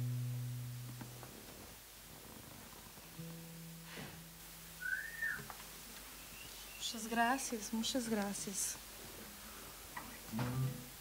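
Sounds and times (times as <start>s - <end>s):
short low guitar note: 3.2s - 4.4s, 10.3s - 10.9s.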